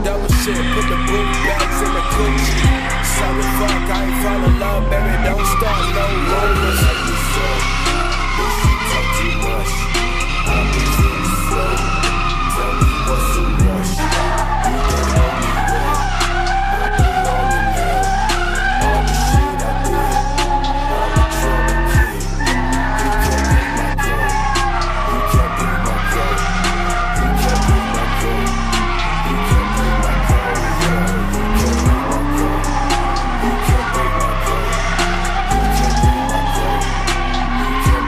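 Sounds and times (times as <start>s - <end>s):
car tyres squealing: 0.0s - 38.0s
hip-hop beat: 0.0s - 38.0s.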